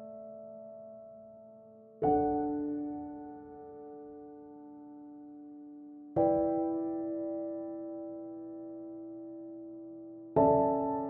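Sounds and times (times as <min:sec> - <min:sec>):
soft piano chord: 0:00.0 - 0:11.0.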